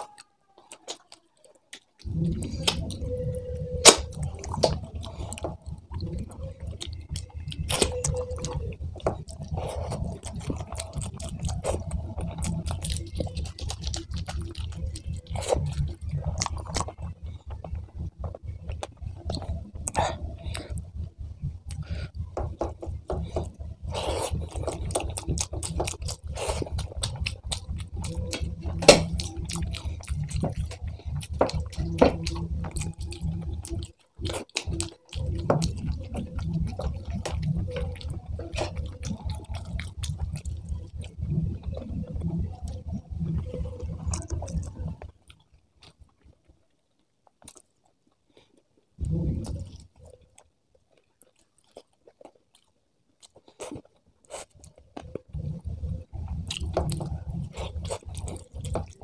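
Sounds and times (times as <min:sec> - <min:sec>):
wet chewing and lip-smacking: 0:00.0 - 0:59.0.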